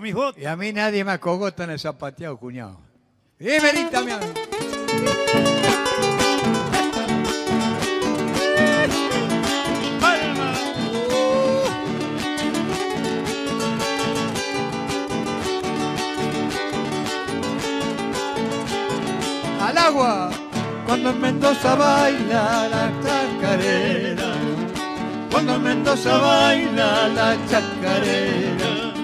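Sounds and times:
acoustic guitars strumming: 0:03.6 - 0:29.0
short vocal cries: 0:08.3 - 0:09.3, 0:10.0 - 0:11.9
person singing: 0:08.3 - 0:11.9, 0:19.6 - 0:24.7, 0:25.3 - 0:29.0.

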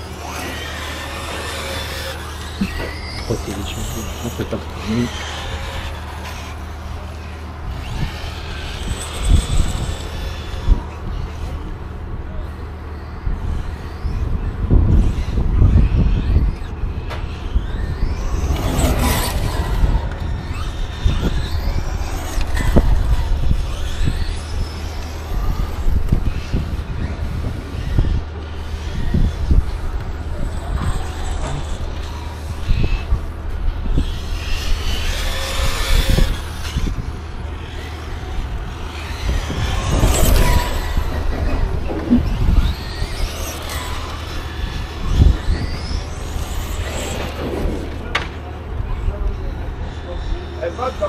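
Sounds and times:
radio-controlled car motor: 0:00.0 - 0:51.0.

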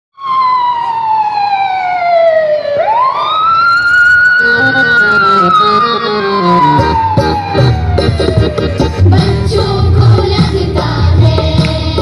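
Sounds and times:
siren-like gliding tone: 0:00.2 - 0:09.0
song backing music: 0:04.4 - 0:12.0.

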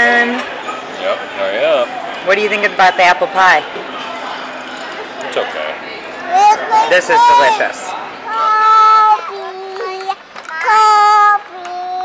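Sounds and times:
child singing long held notes: 0:08.3 - 0:12.0.

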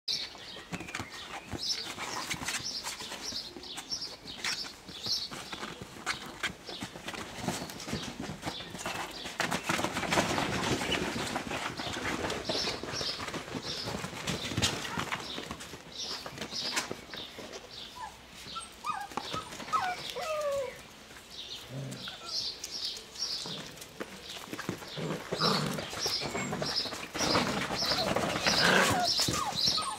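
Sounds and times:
puppies scuffling and rustling: 0:00.1 - 0:29.9
puppies squeaking and whining: 0:17.9 - 0:20.8, 0:25.0 - 0:29.9.

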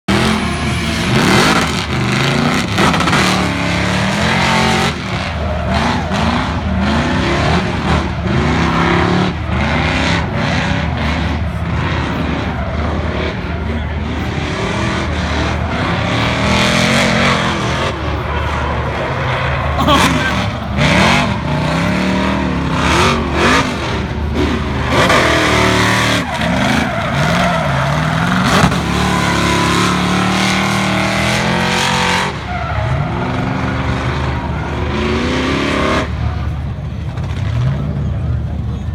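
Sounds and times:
car engine revving hard: 0:00.1 - 0:36.2
tires squealing: 0:00.1 - 0:38.9.

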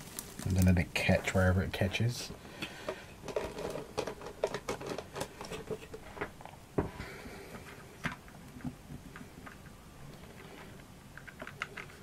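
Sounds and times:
craft materials clicking and rustling: 0:00.0 - 0:00.7, 0:01.8 - 0:06.6, 0:07.5 - 0:12.0.

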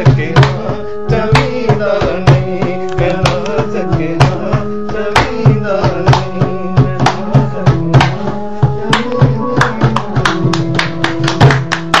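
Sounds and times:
hand drum struck rapidly: 0:00.0 - 0:12.0.

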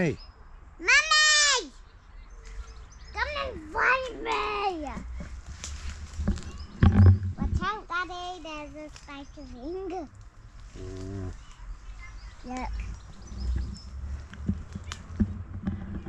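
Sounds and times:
low thumps: 0:05.0 - 0:07.8.

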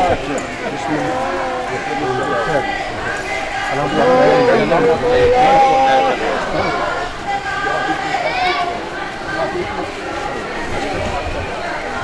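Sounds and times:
crowd of men calling out: 0:03.6 - 0:07.3.

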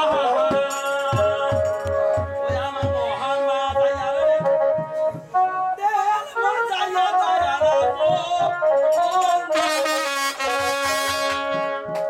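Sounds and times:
hand drum beats: 0:00.0 - 0:05.6, 0:10.4 - 0:12.0.

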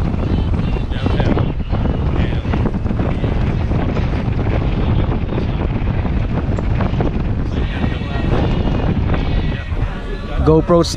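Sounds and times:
wind buffeting microphone: 0:00.0 - 0:10.9.

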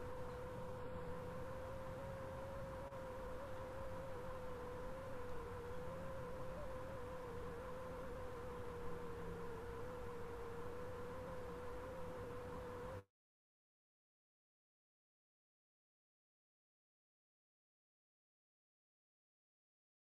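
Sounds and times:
low hum and hiss: 0:00.0 - 0:13.0
faint wavering tone: 0:03.3 - 0:08.1.

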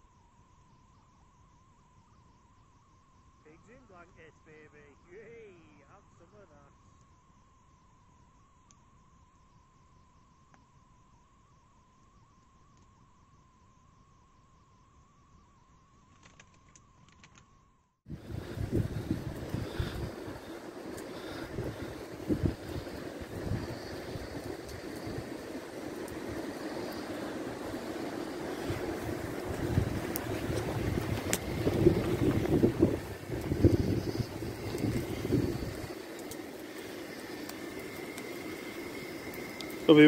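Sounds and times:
steady low hum: 0:18.1 - 0:40.0
wind buffeting microphone: 0:18.1 - 0:40.0.

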